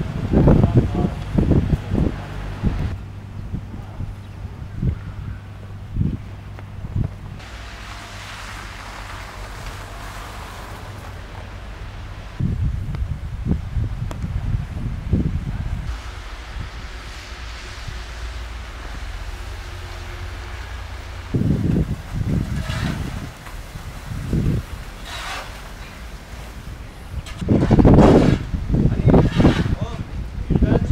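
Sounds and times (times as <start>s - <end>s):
low outdoor rumble: 0.0s - 30.9s
wind buffeting microphone: 0.0s - 30.9s.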